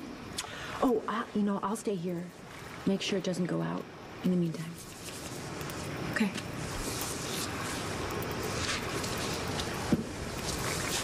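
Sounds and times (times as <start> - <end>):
rushing outdoor background noise: 0.0 - 11.0.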